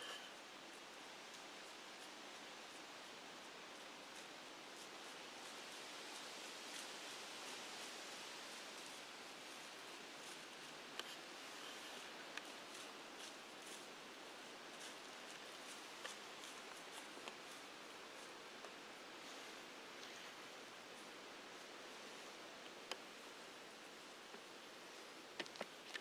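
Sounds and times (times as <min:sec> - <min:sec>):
faint steady hiss: 0:00.0 - 0:26.0.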